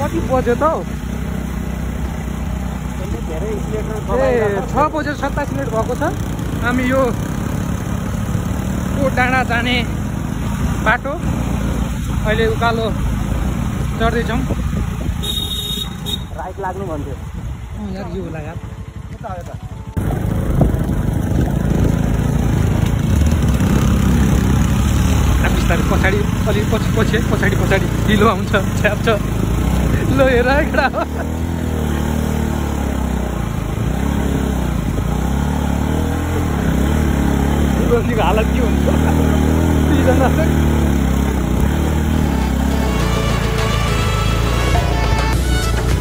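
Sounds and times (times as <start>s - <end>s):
motorcycle engine running: 0.0s - 46.0s
music with held notes: 42.6s - 46.0s.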